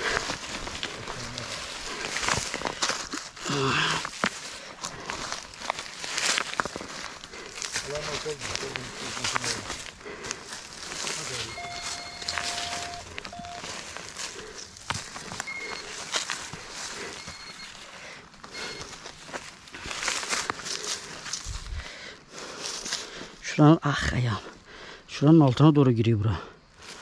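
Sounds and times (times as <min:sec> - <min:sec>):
hands scraping soil: 0:00.0 - 0:17.8.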